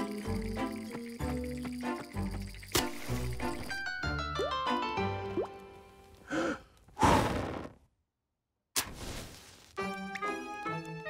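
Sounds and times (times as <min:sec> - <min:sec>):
cartoon background music: 0:00.0 - 0:06.1, 0:09.8 - 0:11.0.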